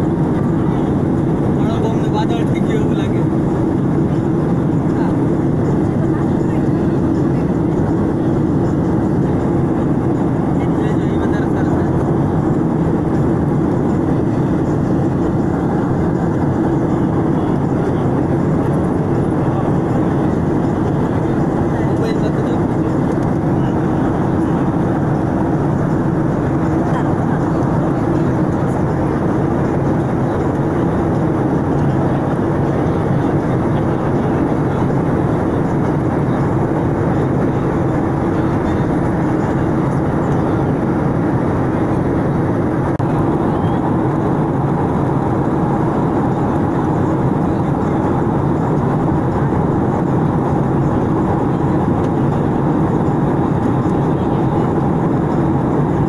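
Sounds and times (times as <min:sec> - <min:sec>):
airliner cabin engine and airflow noise: 0:00.0 - 0:56.0
low hum: 0:00.0 - 0:56.0.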